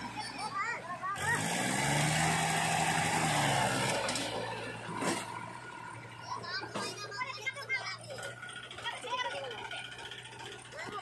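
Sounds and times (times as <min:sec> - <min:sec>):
tractor diesel engine under load: 0:00.0 - 0:11.0.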